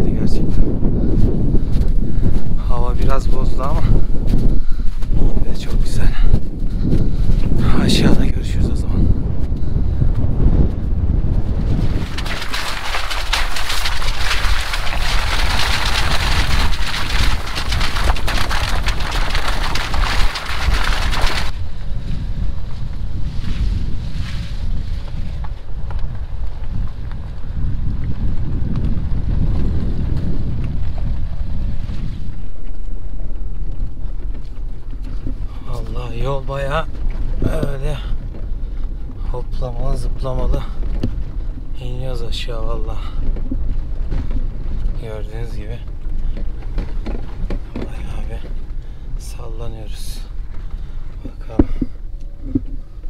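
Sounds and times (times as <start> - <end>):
car engine and tyre rumble: 0.0 - 53.0
wind rushing over microphone: 0.0 - 53.0.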